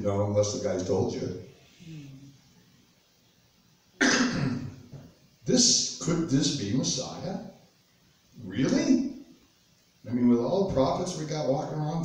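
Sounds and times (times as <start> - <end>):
man clearing his throat: 4.0 - 4.8.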